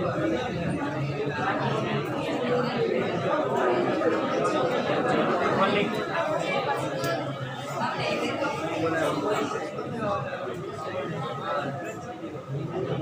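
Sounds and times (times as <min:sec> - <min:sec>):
overlapping chatter: 0:00.0 - 0:13.0.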